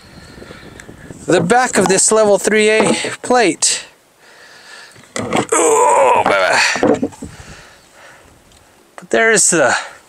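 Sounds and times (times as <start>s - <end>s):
man exclaiming: 5.5s - 6.7s.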